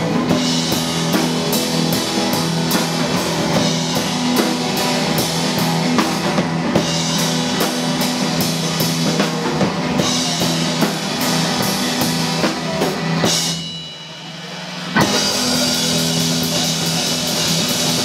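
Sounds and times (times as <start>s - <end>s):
bass guitar: 0.0s - 13.8s, 14.4s - 18.0s
electric guitars: 0.0s - 13.8s, 14.4s - 18.0s
drum kit beat: 0.0s - 18.0s.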